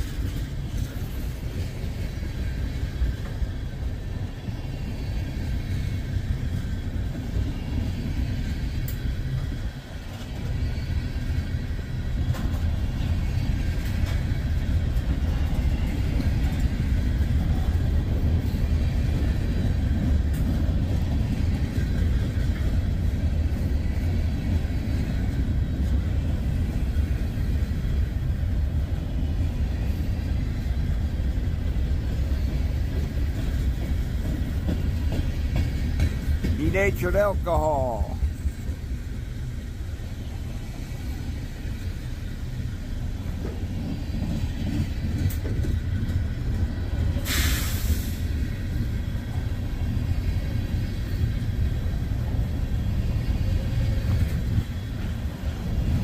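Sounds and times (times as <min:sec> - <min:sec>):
freight train wheels rumbling on rails: 0:00.0 - 0:56.0.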